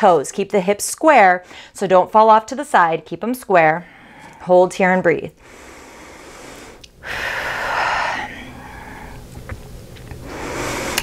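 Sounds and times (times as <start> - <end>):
woman breathing deeply: 1.4 - 1.8, 3.8 - 4.5, 5.4 - 9.3, 10.1 - 11.0.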